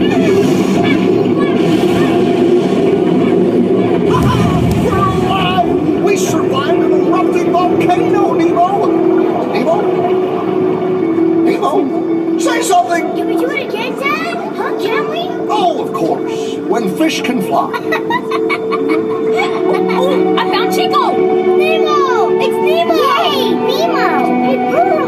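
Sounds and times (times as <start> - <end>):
indistinct voices: 0.0 - 25.0.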